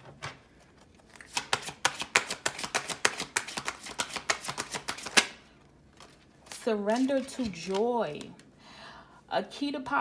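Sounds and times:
deck of cards shuffled by hand: 0:01.0 - 0:05.4.

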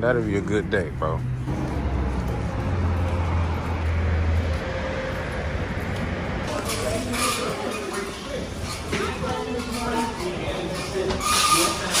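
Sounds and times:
vehicle engine humming: 0:00.0 - 0:11.2
outdoor traffic noise: 0:00.0 - 0:12.0.

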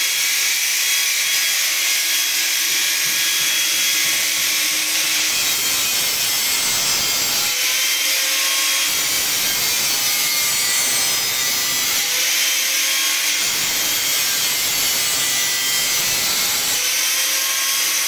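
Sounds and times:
angle grinder cutting steel pipe: 0:00.0 - 0:18.0.

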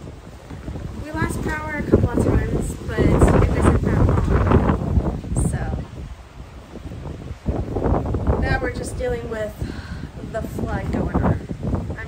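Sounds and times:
storm wind buffeting microphone: 0:00.0 - 0:12.0
woman talking: 0:01.0 - 0:05.9, 0:08.4 - 0:12.0.

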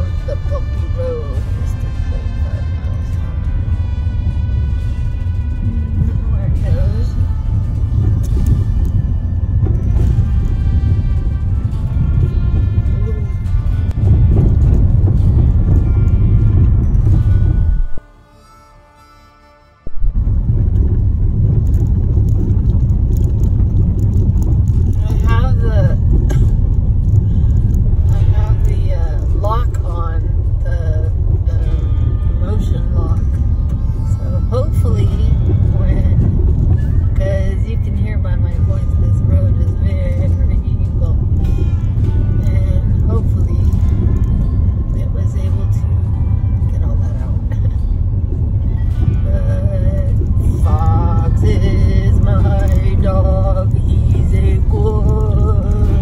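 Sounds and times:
car rumbling on bumpy road: 0:00.0 - 0:18.2, 0:19.8 - 0:56.0.

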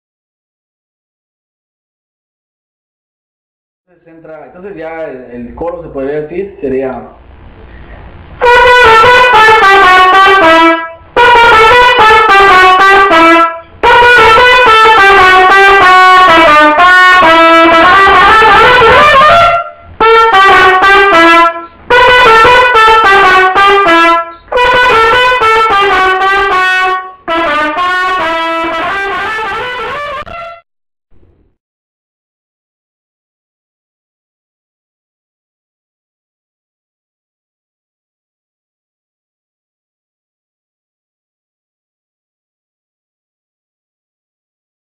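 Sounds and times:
solo trumpet melody: 0:08.4 - 0:30.7.

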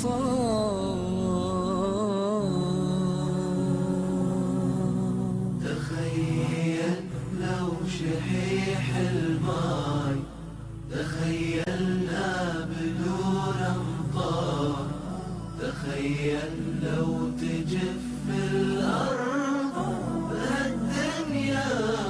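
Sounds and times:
chanted melodic vocals: 0:00.0 - 0:22.0.

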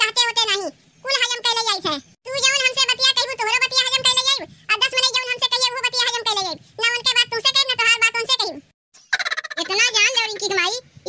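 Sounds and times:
cartoon woman laughing: 0:09.0 - 0:09.8.

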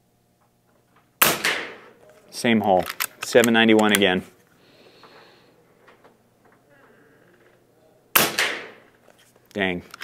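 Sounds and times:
air rifle shot: 0:01.2 - 0:01.9, 0:08.1 - 0:08.9.

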